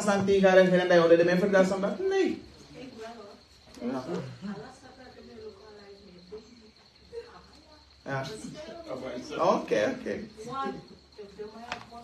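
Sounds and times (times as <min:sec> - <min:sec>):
high-pitched insect trill: 0:00.0 - 0:12.0.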